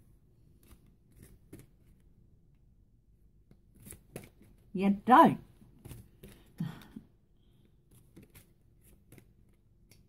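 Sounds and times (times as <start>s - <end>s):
cards shuffling: 0.5s - 2.1s, 3.5s - 4.7s, 7.8s - 10.0s.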